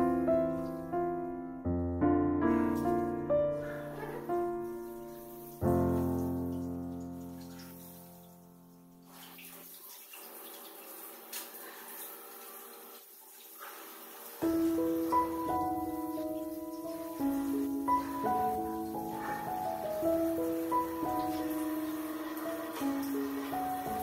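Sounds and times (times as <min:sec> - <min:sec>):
solo piano music: 0:00.0 - 0:09.5, 0:14.4 - 0:24.0
tap water running and splashing: 0:04.1 - 0:24.0.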